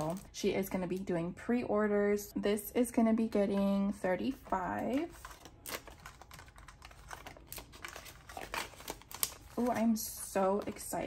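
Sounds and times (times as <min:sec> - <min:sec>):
banknotes clicking and crinkling: 0:04.3 - 0:11.0.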